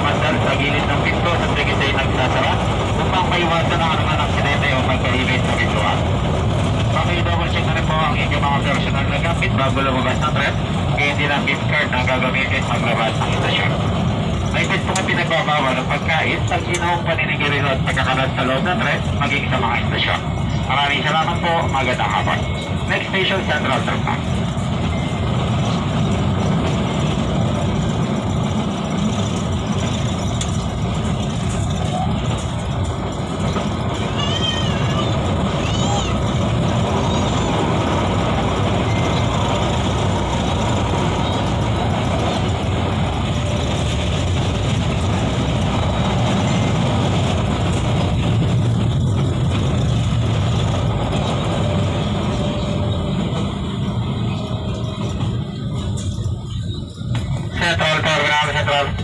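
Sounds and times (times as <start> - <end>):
people talking: 0.0 - 6.1, 6.9 - 13.8, 14.5 - 24.3, 34.1 - 36.2, 54.8 - 59.0
light-rail car running noise: 0.0 - 59.0.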